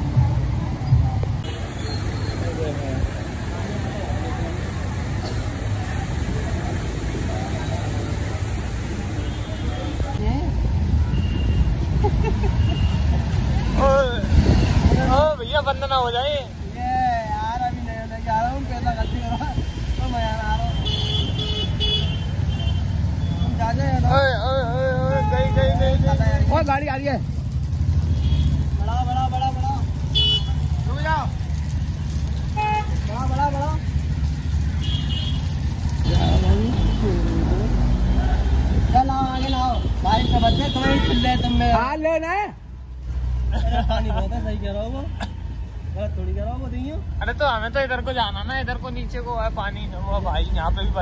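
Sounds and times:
motorcycle engine rumbling: 0.0s - 41.9s
voices: 23.2s - 27.5s, 35.8s - 42.6s
vehicle horn toot: 39.4s - 41.6s.

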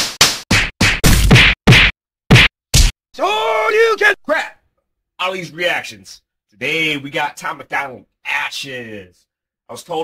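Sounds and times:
sharp whack impact effects: 0.0s - 3.0s.

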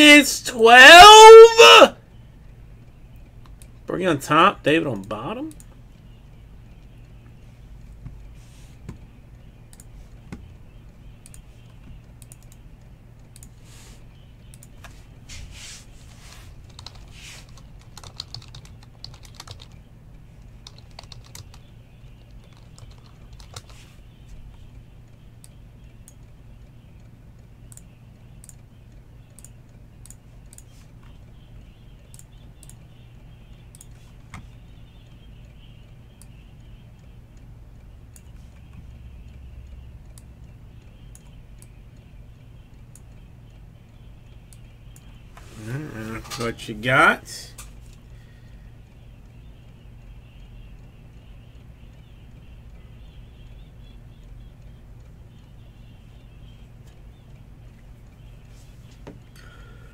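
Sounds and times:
steady low hum: 2.0s - 59.9s
computer keyboard typing: 16.6s - 23.9s.

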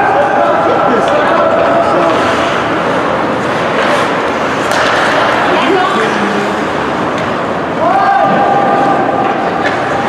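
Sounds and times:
skates on ice: 0.0s - 10.0s
spectators: 0.0s - 10.0s
spectator long shout: 7.8s - 9.2s.

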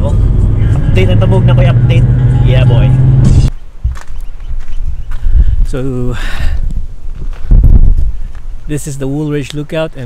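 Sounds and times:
car engine and road noise: 0.0s - 5.2s.

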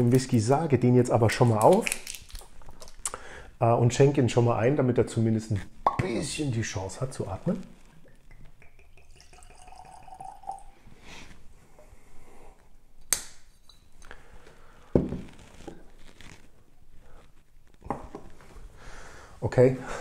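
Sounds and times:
liquid pouring into a glass: 8.0s - 10.8s
bottle set down on wood: 15.0s - 15.3s.

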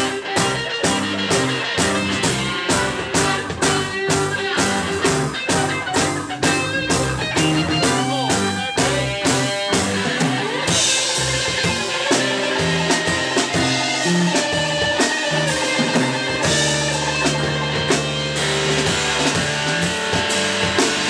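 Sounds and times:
guitar bending notes: 0.0s - 21.0s
live rock band playing: 0.0s - 21.0s.

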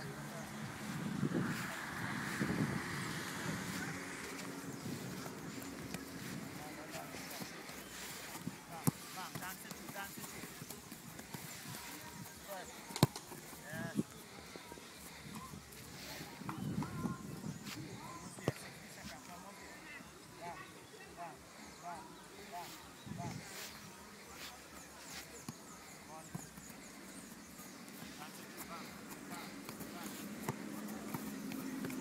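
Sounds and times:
faint distant voices: 0.0s - 32.0s
football taps: 5.1s - 14.1s, 27.9s - 32.0s.

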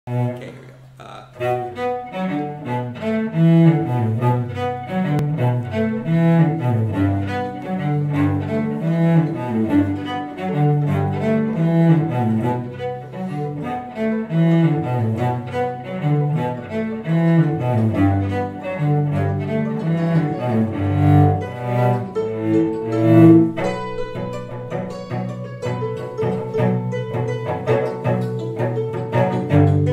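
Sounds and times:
hammered dulcimer playing: 19.6s - 29.9s.

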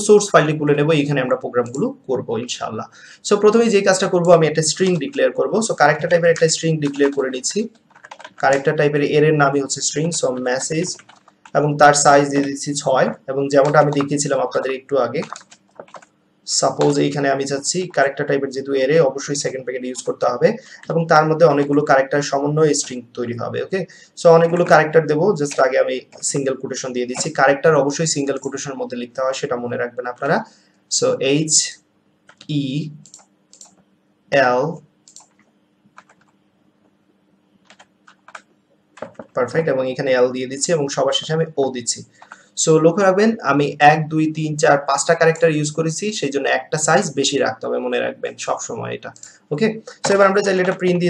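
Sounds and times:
person talking: 0.0s - 35.3s, 38.1s - 51.0s
faint steady hum: 0.0s - 51.0s
computer keyboard keystrokes: 6.0s - 8.8s, 10.3s - 12.6s, 13.6s - 14.2s, 15.1s - 16.1s, 16.7s - 17.0s, 20.8s - 21.9s, 24.4s - 26.4s, 32.3s - 33.8s, 35.0s - 36.4s, 37.6s - 39.4s, 42.2s - 42.4s, 50.0s - 51.0s
computer keyboard key clicks: 6.3s - 7.2s, 7.8s - 8.6s, 15.2s - 16.1s, 33.1s - 33.8s, 35.1s - 36.4s, 37.6s - 39.4s.

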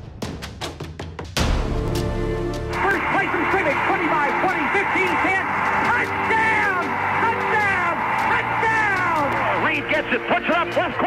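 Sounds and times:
announcer talking excitedly: 2.8s - 11.0s
crowd noise: 2.8s - 11.0s.

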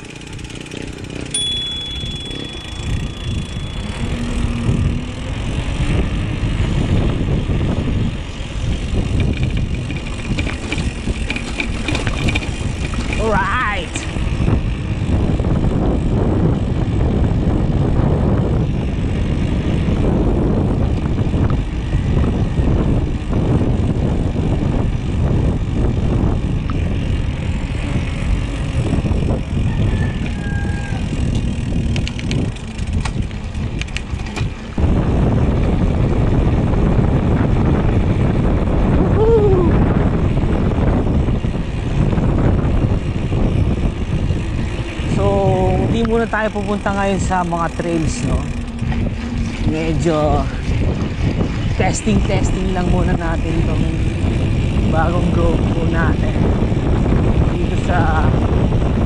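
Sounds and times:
bike tyre rumble: 0.0s - 59.0s
wind rushing over microphone: 0.0s - 59.0s.

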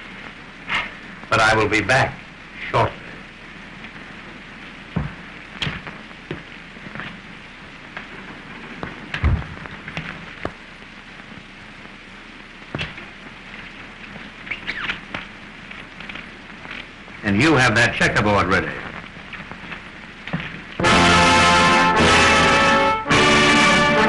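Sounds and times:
film soundtrack hiss: 0.0s - 24.0s.

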